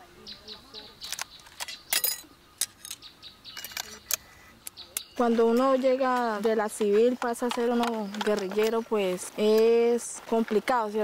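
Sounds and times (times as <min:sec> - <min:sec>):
birds chirping: 0:00.0 - 0:11.0
rifle metallic clicks and clacks: 0:01.0 - 0:03.0, 0:03.6 - 0:08.8.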